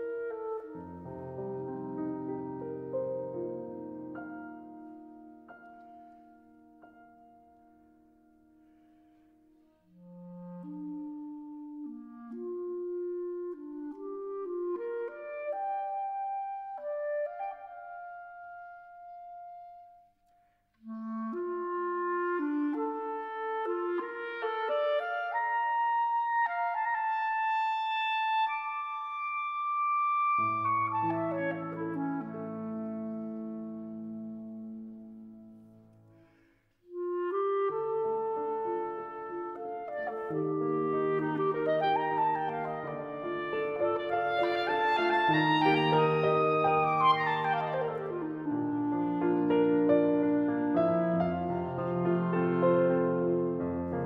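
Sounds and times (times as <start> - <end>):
deep piano chords: 0.0 - 8.6, 40.2 - 54.0
clarinet melody: 0.0 - 54.0.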